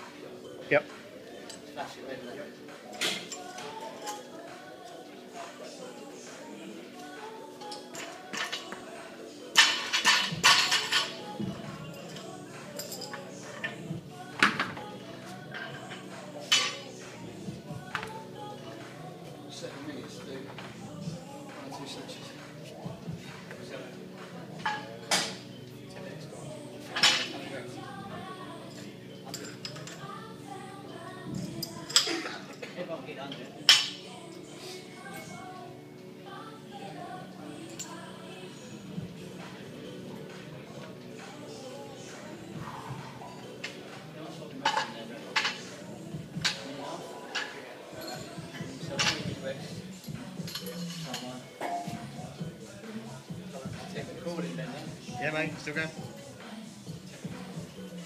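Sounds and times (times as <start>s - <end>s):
background music: 0.0s - 58.0s.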